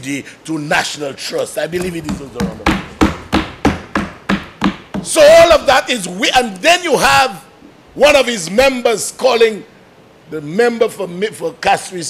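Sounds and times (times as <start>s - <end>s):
hands pounding on wooden desks: 1.8s - 5.3s.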